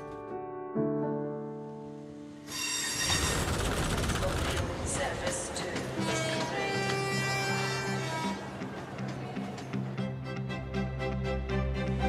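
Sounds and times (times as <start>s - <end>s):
piano chord: 0.0s - 3.2s
steel wheel squeal: 2.5s - 3.9s
train rumbling: 2.8s - 10.0s.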